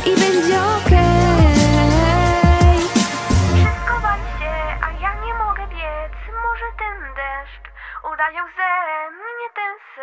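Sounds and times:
backing track with bass: 0.0s - 8.4s
girl singing pop vocal: 0.0s - 10.0s.

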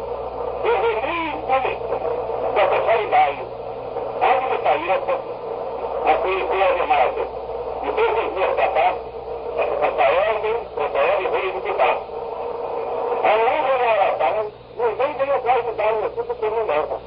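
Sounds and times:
steady low hum: 0.0s - 17.0s
man preaching: 0.6s - 3.5s, 4.2s - 5.2s, 6.0s - 9.0s, 9.6s - 12.1s, 13.2s - 17.0s.

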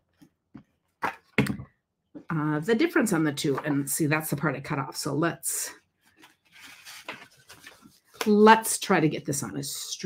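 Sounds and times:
paper rustling and sliding: 6.1s - 8.3s.

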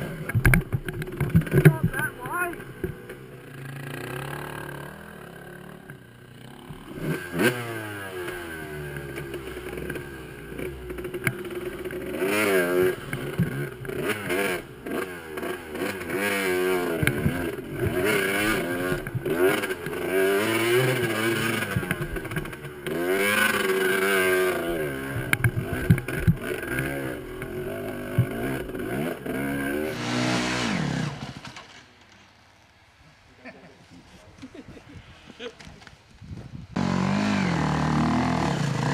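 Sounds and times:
dirt bike engine revving: 0.0s - 31.6s, 36.7s - 38.9s.

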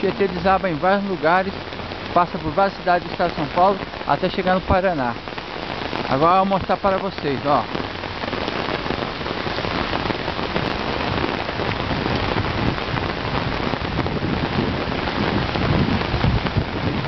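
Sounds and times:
heavy rain on pavement: 0.0s - 17.0s.

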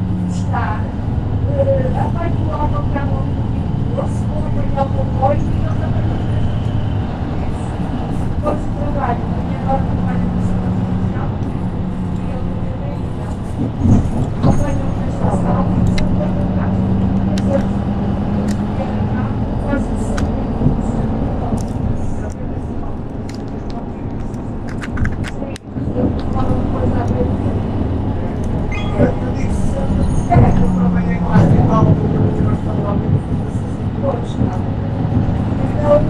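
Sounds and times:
diesel bus engine droning: 0.0s - 36.0s
rattles and clicks from bus body: 0.0s - 36.0s.

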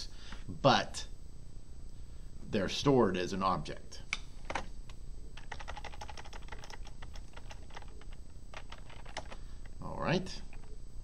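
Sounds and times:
computer keyboard typing: 5.4s - 9.4s.

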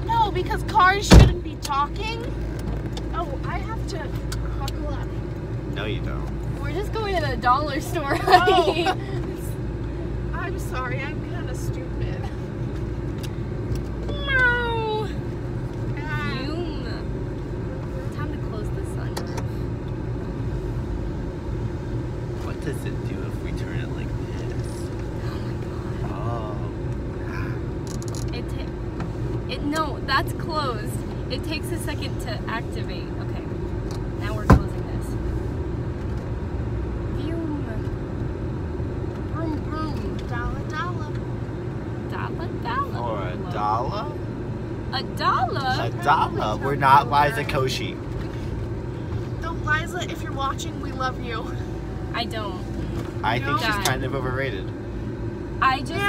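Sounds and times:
car cabin road and engine hum: 0.0s - 56.0s.

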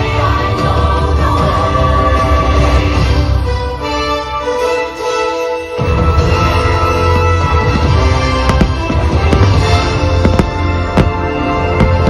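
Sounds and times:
loud soundtrack music: 0.0s - 12.0s.

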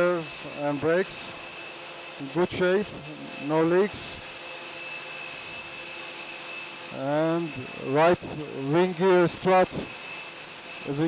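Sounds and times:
turbine rush with high whine: 0.0s - 11.0s.

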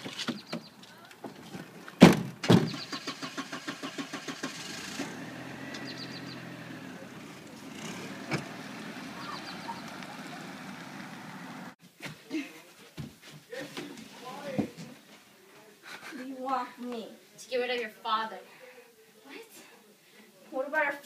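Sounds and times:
sharp thump: 2.0s - 2.8s
car engine running: 4.4s - 11.8s
car doors slamming: 8.1s - 8.6s.

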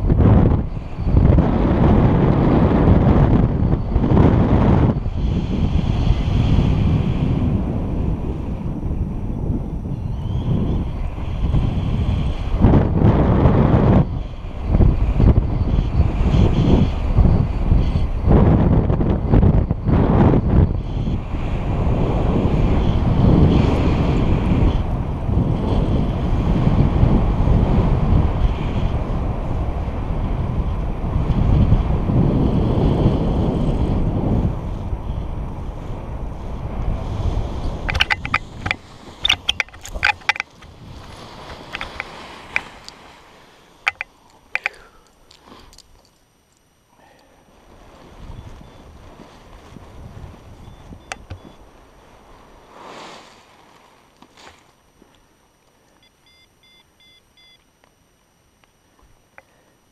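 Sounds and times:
wind buffeting microphone: 0.0s - 44.8s, 47.6s - 52.7s
sharp clicks: 37.9s - 40.7s, 41.7s - 43.0s, 43.9s - 47.3s
rustling: 47.5s - 55.8s.

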